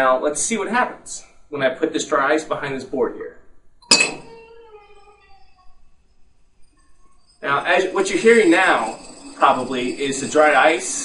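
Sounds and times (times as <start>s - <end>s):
dry ice clinking on glass: 3.8s - 5.8s, 6.6s - 11.0s
glass ringing: 3.8s - 11.0s.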